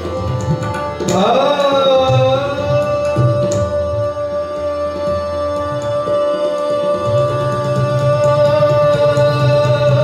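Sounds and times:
harmonium: 0:00.0 - 0:10.0
tabla strokes: 0:00.0 - 0:10.0.

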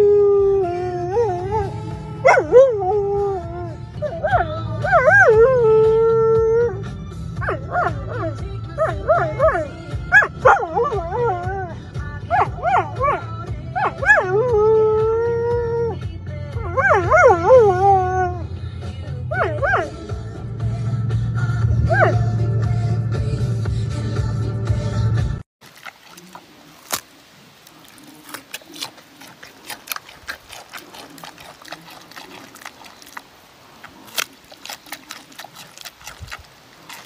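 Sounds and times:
dog howling: 0:00.0 - 0:16.0, 0:16.6 - 0:18.5, 0:28.2 - 0:33.3.

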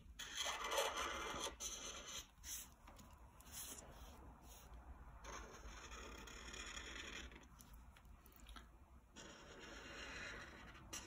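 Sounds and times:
marker scratching on paper: 0:00.0 - 0:07.5, 0:09.2 - 0:11.0.

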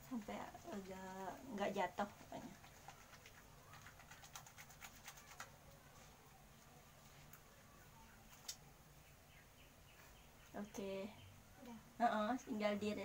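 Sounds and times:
wet clicks of soap lather: 0:08.3 - 0:08.6.

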